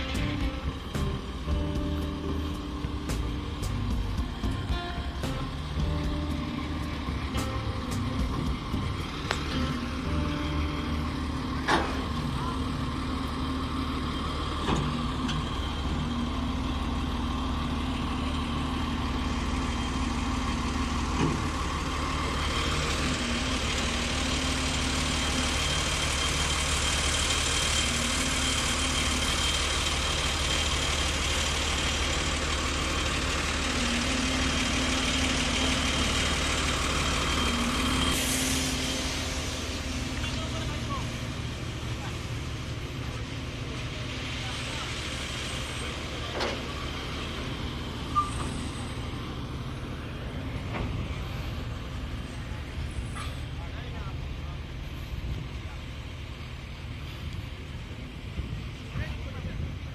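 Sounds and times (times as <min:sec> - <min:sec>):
heavy engine running: 0:00.0 - 0:59.9.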